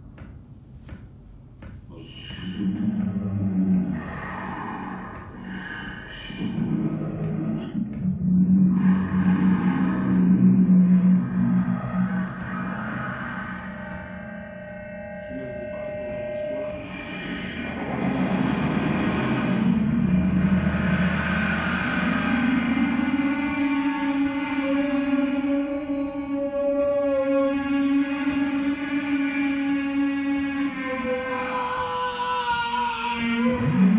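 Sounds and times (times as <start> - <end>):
electronic drone music: 2.3 - 33.9.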